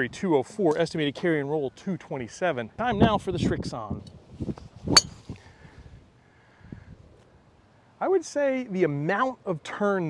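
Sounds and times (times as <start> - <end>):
faint outdoor background: 0.0 - 10.0
golf club striking ball: 4.9 - 5.2.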